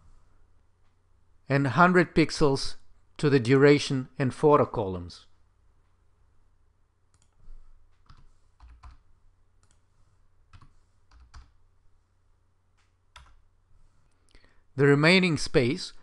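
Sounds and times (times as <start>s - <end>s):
keystrokes and mouse clicks: 7.1s - 9.9s, 10.5s - 11.6s, 12.7s - 13.4s.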